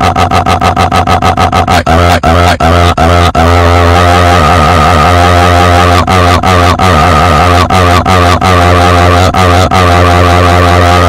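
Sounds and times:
distorted droning sound: 0.0 - 11.0.

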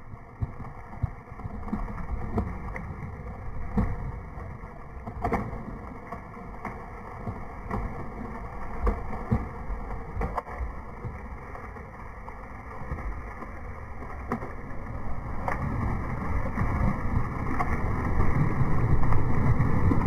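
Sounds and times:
steady low rumble: 0.0 - 20.0.

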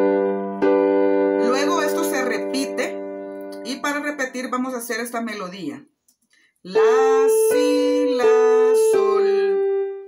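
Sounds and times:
piano chord ringing: 0.0 - 4.2
person's voice: 1.4 - 5.9, 6.7 - 9.6.

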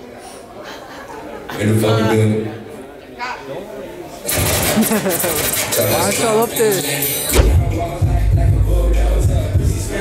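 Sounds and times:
man laughing and speaking: 4.8 - 6.8.

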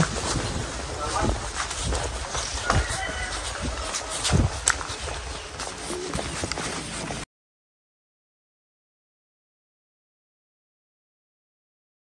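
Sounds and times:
footsteps on stony dirt road: 0.0 - 7.3
outdoor noise: 0.0 - 7.3.

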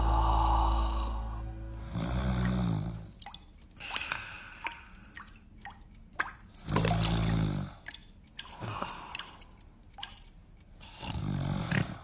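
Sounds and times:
dripping plinks and clicks: 2.4 - 10.7.

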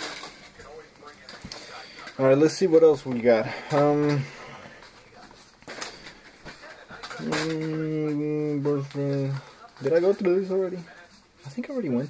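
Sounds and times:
trading cards rustling and clicking: 0.0 - 12.0.

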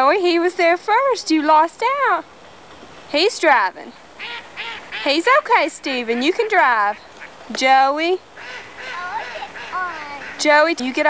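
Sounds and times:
woman calling loudly: 8.8 - 11.0.

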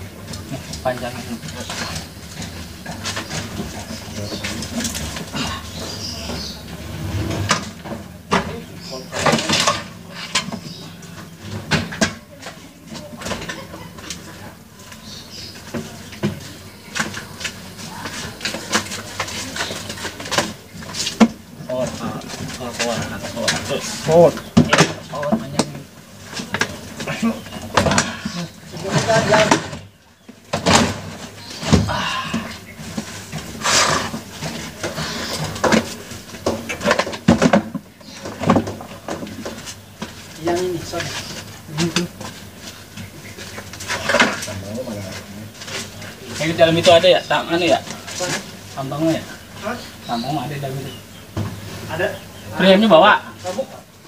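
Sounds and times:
indistinct voices talking: 0.0 - 54.0.

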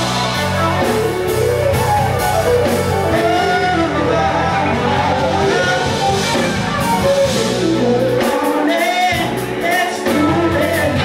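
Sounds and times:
live band playing: 0.0 - 11.0
person singing: 2.6 - 11.0.

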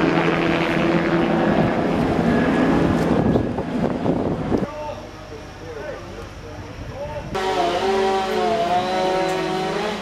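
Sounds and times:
aircraft engine drone: 0.0 - 6.7, 7.4 - 10.0.

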